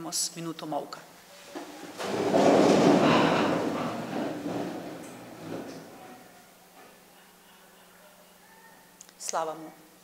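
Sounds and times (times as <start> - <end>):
people shuffling to their feet: 1.2 - 7.0
wooden chairs scraping: 1.3 - 6.3.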